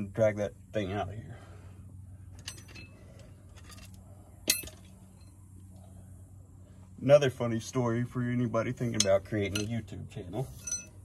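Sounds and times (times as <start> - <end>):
metal tools clinking: 2.3 - 5.3, 8.8 - 9.8, 10.4 - 11.0.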